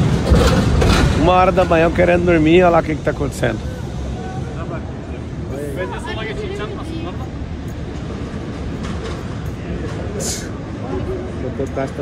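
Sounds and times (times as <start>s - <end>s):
low rumble of street noise: 0.0s - 12.0s.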